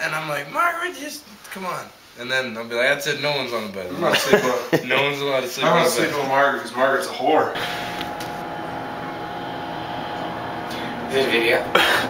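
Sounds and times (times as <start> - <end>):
steady mechanical hum: 4.9 - 12.0.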